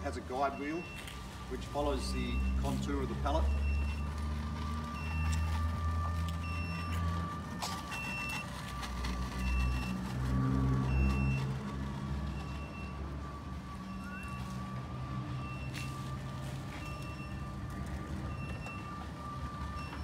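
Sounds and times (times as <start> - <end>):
steady thin whine: 0.0 - 20.0
low motor hum: 0.9 - 20.0.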